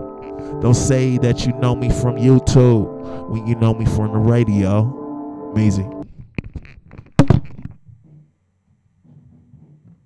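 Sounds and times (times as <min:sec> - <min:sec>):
microphone handling knocks: 0:06.1 - 0:08.4, 0:09.0 - 0:10.0.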